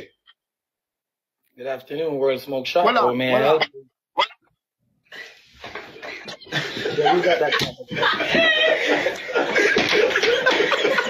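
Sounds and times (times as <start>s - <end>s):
men talking and laughing: 5.2s - 11.0s.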